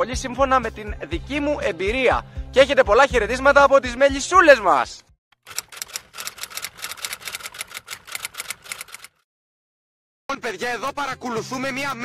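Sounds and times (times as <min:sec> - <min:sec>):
typewriter key clicks: 0:05.5 - 0:09.1.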